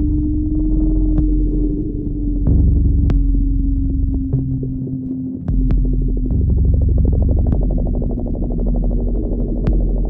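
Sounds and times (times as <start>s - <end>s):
synthesizer bass: 0.0s - 10.0s.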